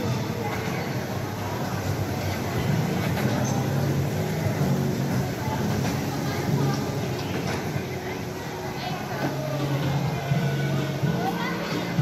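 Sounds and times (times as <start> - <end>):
electric toy train rolling on track: 0.0 - 11.2
shopping mall hubbub: 0.0 - 12.0.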